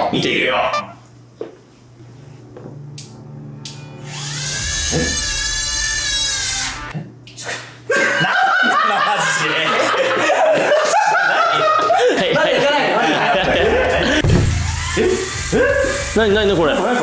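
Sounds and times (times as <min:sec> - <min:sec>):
toy electric motor whirring: 0:04.0 - 0:06.9, 0:14.1 - 0:17.0
laughter: 0:07.9 - 0:14.2.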